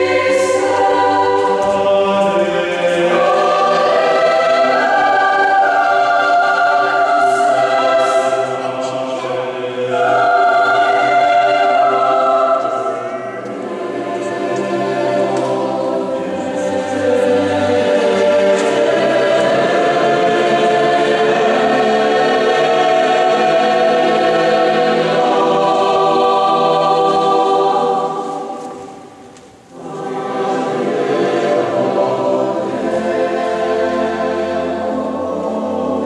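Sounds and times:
mixed choir singing: 0:00.0 - 0:36.0.

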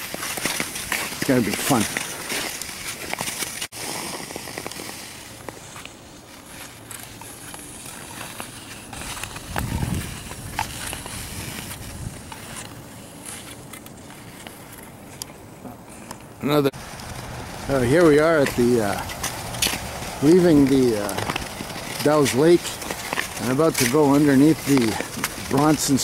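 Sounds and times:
skate blades scraping on ice: 0:00.0 - 0:15.2, 0:16.9 - 0:26.0.

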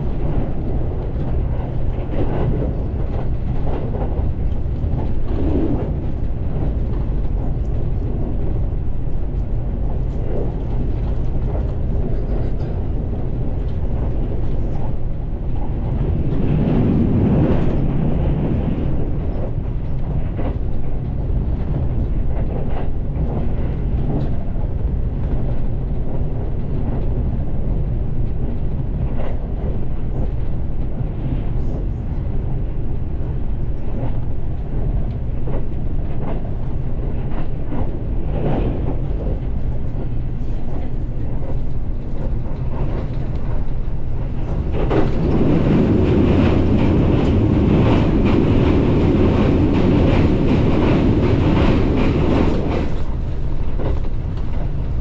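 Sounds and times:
train running at speed: 0:00.0 - 0:55.0
wheels clicking over rail joints: 0:34.8 - 0:55.0.

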